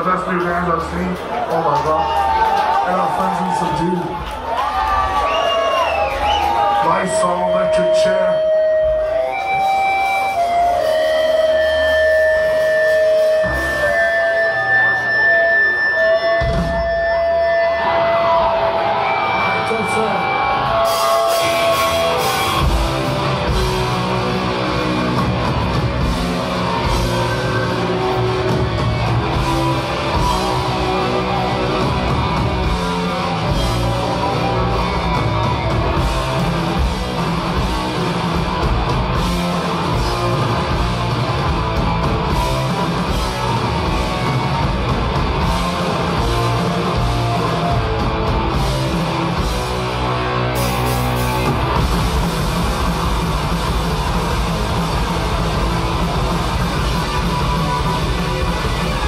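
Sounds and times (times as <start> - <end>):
live hardcore punk band: 0.0 - 59.0
distorted guitar: 6.0 - 59.0.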